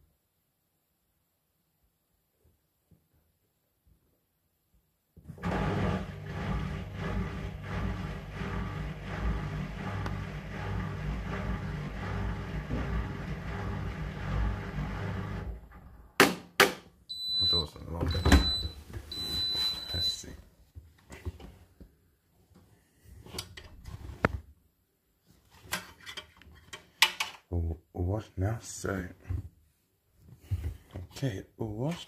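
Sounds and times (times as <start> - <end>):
washing machine humming: 5.4 - 16.0
high beeps: 17.1 - 20.2.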